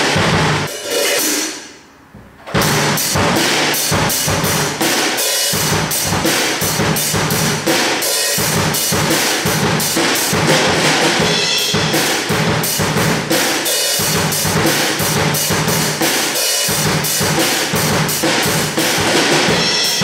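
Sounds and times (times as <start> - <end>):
drum kit beat: 0.0 - 20.0.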